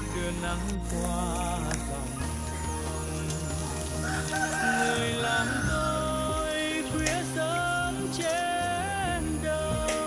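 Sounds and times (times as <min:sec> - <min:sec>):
slow song: 0:00.0 - 0:10.0
rooster crowing: 0:03.6 - 0:06.7.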